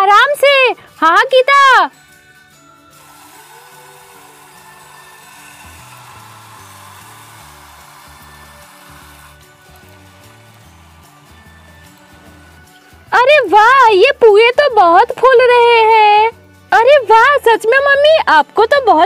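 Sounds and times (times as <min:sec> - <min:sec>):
soft background music: 0:00.0 - 0:19.0
batter sizzling in hot oil: 0:02.8 - 0:13.0.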